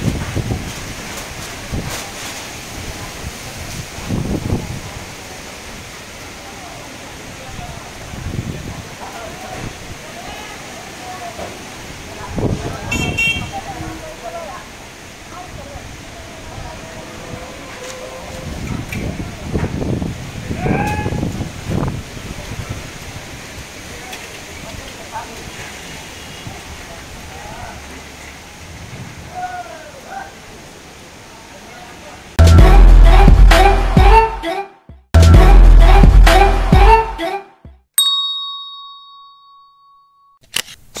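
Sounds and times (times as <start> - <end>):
wind rushing: 2.7 - 5.1, 15.9 - 23.6
music track: 32.4 - 37.8
bell-like ding: 38.0 - 40.4.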